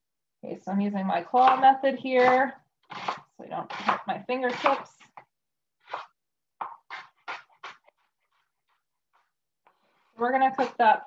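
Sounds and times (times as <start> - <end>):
knife chopping onion on board: 1.4 - 5.0.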